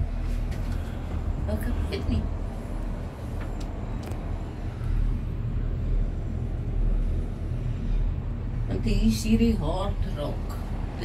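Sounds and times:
vehicle rumble: 0:00.0 - 0:11.0.

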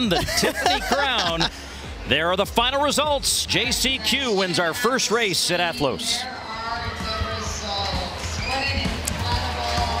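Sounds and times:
voices over loudspeakers: 0:03.0 - 0:10.0.

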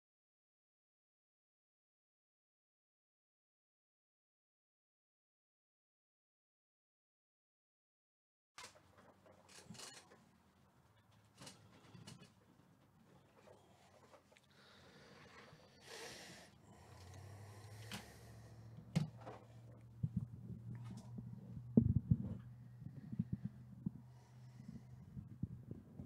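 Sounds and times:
handling noises on a table: 0:08.6 - 0:10.4
low steady hum: 0:09.5 - 0:26.0.

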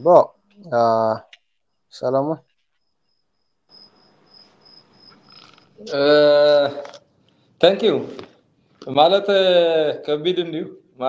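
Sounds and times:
faint room noise hiss: 0:00.0 - 0:11.0.

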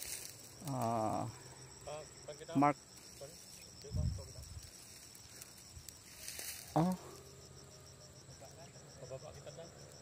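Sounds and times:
insects chirping trill: 0:00.0 - 0:10.0.

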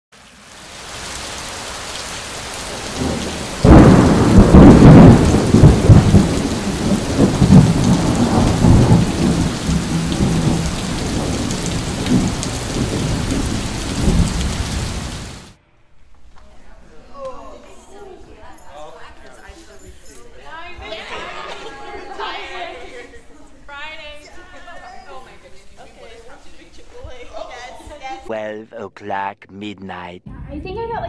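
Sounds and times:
steady rain: 0:00.1 - 0:15.6
loud thunderclap rumbling: 0:02.5 - 0:15.6.

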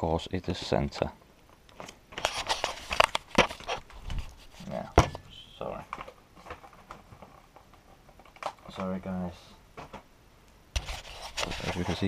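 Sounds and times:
cardboard and plastic crinkling: 0:01.8 - 0:05.2, 0:10.8 - 0:12.0.

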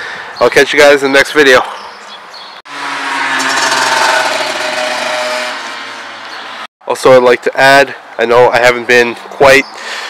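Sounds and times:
car running: 0:02.7 - 0:06.6.

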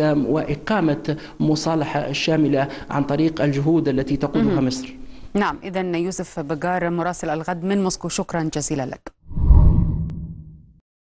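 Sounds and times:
low whoosh: 0:09.3 - 0:10.7.

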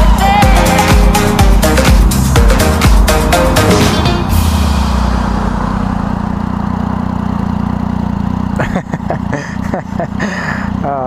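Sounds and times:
motorcycle engine idling: 0:00.0 - 0:11.0.

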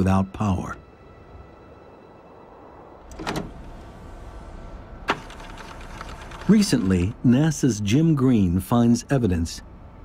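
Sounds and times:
faint hum: 0:00.0 - 0:10.0
low steady rumble: 0:00.0 - 0:10.0.

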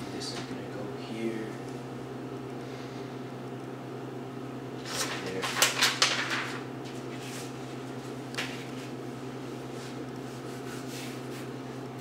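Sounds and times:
low room hum: 0:00.0 - 0:12.0
paper rustling and crackling: 0:04.8 - 0:07.6.

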